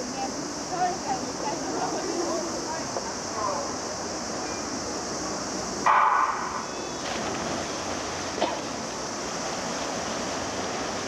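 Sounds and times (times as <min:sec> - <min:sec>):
outdoor pool ambience hiss: 0:00.0 - 0:11.0.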